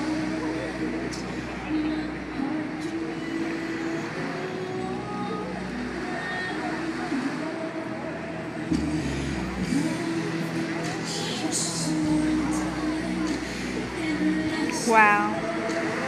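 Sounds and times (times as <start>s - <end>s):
crowd voices: 0.0s - 16.0s
road traffic: 0.0s - 16.0s.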